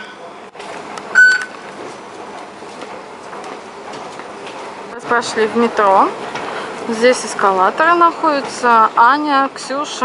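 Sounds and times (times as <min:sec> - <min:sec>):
station ambience hubbub: 0:00.0 - 0:10.0
card reader beep: 0:01.1 - 0:01.6.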